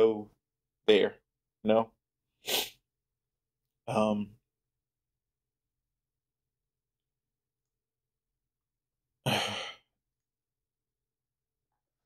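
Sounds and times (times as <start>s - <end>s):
man sighing: 9.2s - 9.9s.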